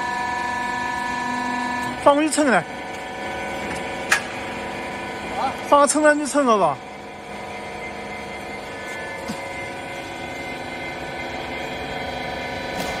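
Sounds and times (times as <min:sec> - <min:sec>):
hydraulic power unit humming: 0:00.0 - 0:13.0.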